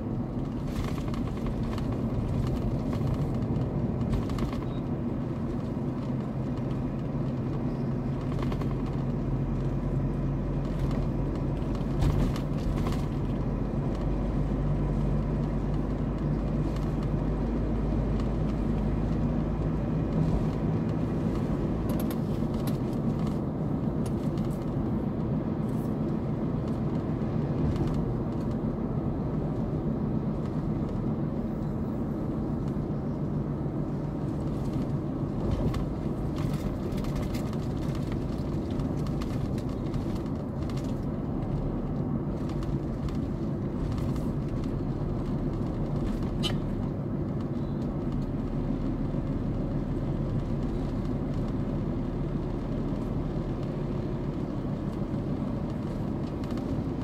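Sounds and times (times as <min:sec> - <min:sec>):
car driving on paved road: 0:00.0 - 0:57.0.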